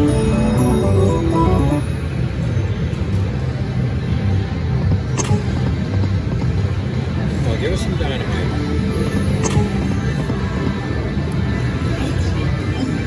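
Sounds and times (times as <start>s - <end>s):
slot machine win jingle: 0.0s - 2.0s
sharp click: 5.2s - 5.4s.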